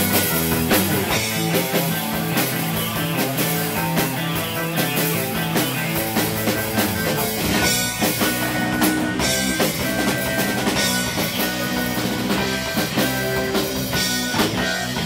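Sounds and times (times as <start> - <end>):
surf rock band playing: 0.0 - 15.0.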